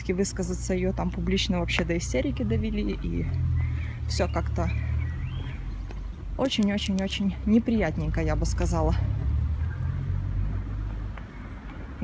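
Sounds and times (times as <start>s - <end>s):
urban street rumble: 0.0s - 12.0s.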